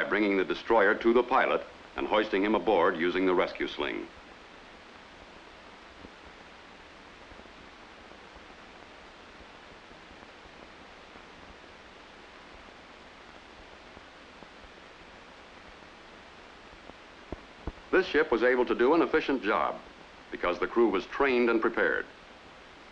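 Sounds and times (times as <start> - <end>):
old film soundtrack hiss: 0.0 - 22.9.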